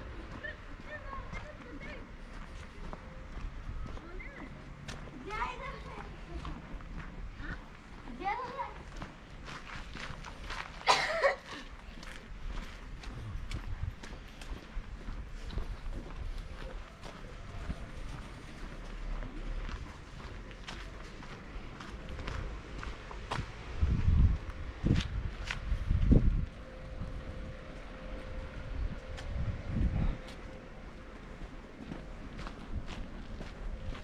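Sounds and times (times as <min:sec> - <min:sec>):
footsteps on cobblestones: 0:00.0 - 0:34.0.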